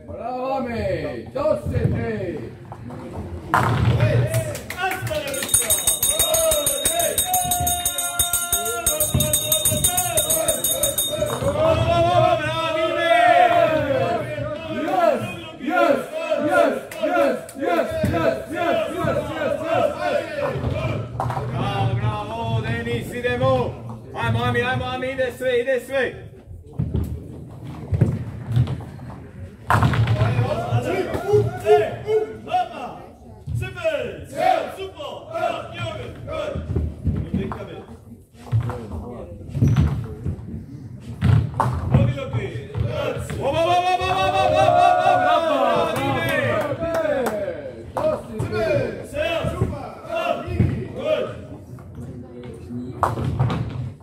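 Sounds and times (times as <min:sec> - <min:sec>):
crowd chanting and shouting: 0:03.1 - 0:25.2, 0:29.1 - 0:37.4, 0:42.4 - 0:51.8
long drawn-out shout: 0:43.6 - 0:47.6.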